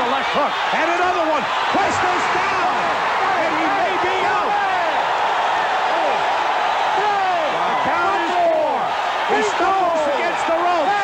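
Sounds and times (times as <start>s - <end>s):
crowd cheering and yelling: 0.0s - 11.0s.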